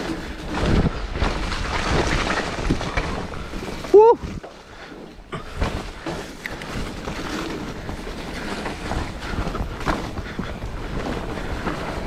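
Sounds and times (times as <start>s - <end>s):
bike rattling and knocking: 0.0s - 12.0s
tyre and wind rush: 0.0s - 12.0s.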